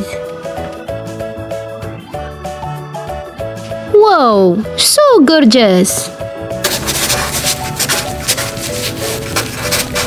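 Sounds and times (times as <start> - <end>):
soft background music: 0.0 - 10.0
marker squeaking on paper: 6.6 - 10.0.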